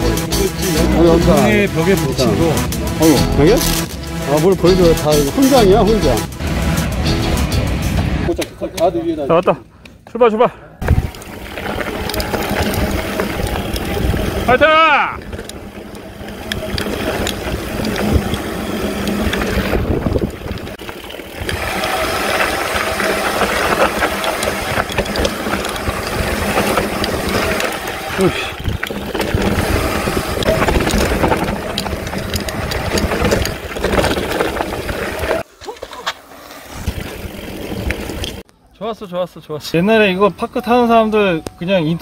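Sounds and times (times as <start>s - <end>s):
wind rush on microphone: 10.8s - 35.4s
bike rattling on dirt trail: 10.8s - 38.4s.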